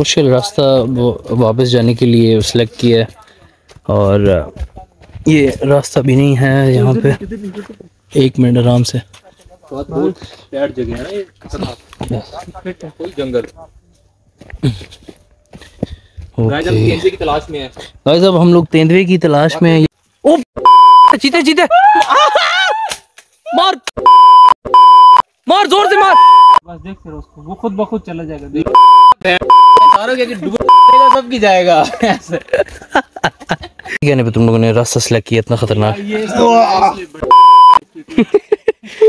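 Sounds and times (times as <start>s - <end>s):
censor bleep: 20.6s - 21.2s, 24.0s - 25.2s, 26.2s - 26.6s, 28.7s - 30.0s, 30.6s - 31.3s, 37.2s - 37.8s
person speaking: 28.6s - 32.5s.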